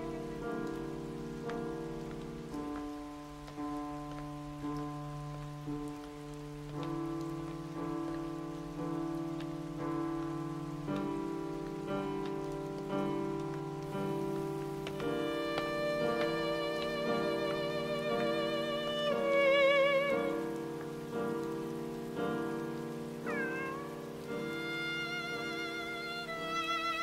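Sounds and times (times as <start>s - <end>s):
rain falling on street: 0.0s - 27.0s
slow background music: 0.0s - 27.0s.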